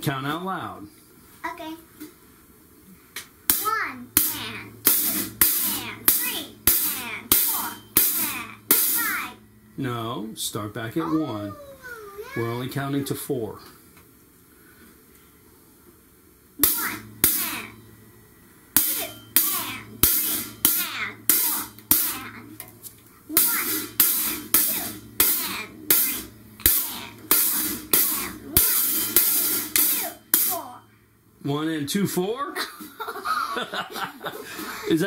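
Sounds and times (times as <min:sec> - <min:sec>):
closed hi-hat hits: 0:03.4 - 0:10.0, 0:16.6 - 0:18.0, 0:18.7 - 0:30.9.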